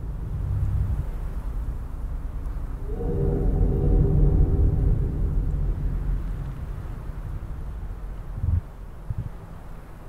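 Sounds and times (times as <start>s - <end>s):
low rumble: 0.0s - 10.0s
steady held tones: 2.8s - 8.2s.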